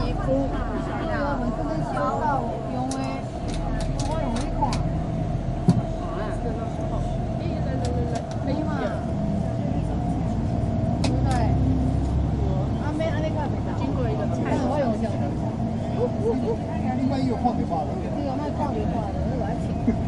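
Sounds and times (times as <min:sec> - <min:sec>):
bus engine and road rumble: 0:00.0 - 0:20.0
voices talking: 0:00.0 - 0:20.0.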